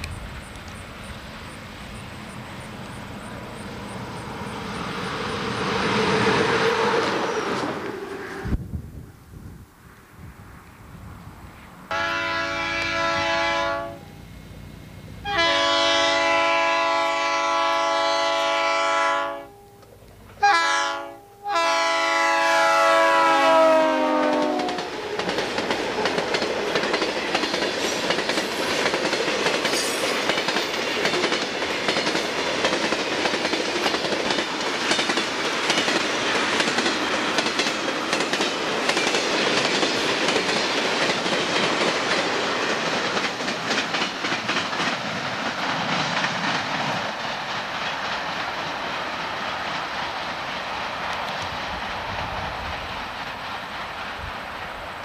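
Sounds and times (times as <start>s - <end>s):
locomotive air horn: 11.9s - 14.2s, 15.2s - 19.8s, 20.4s - 24.9s
train wheels clattering on rails: 23.8s - 55.0s.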